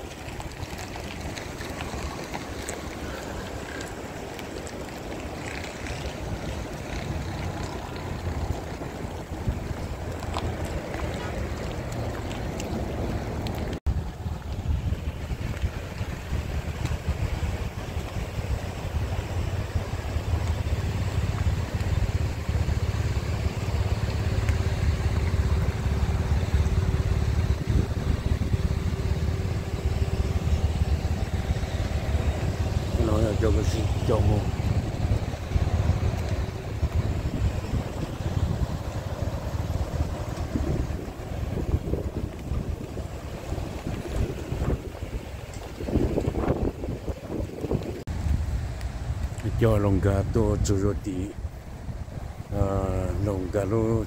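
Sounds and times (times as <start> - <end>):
slow-moving vehicles: 0.0 - 54.0
steady engine hum: 0.0 - 54.0
wind rumbling on microphone: 0.0 - 54.0.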